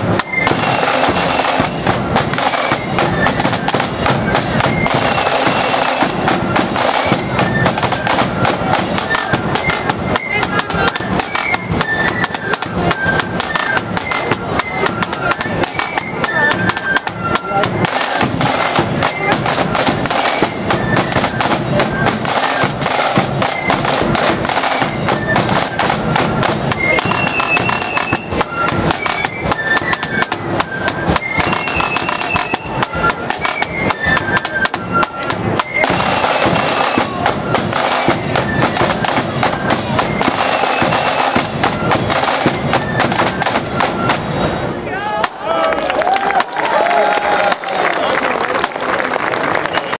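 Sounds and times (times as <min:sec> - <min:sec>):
high flute notes: 0:00.0 - 0:46.2
snare drum rolls: 0:00.0 - 0:47.7.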